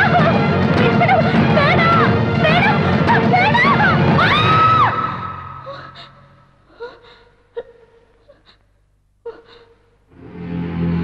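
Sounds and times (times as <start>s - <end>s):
music: 0.0s - 6.0s, 10.1s - 11.0s.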